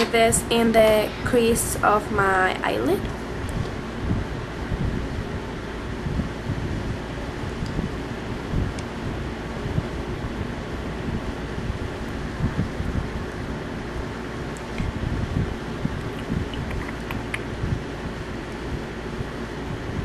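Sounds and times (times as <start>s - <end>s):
low fluttering rumble: 0.0s - 20.0s.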